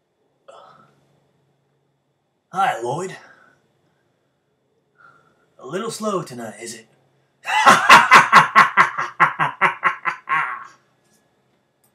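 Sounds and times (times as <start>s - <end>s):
man laughing loudly: 7.4s - 10.8s.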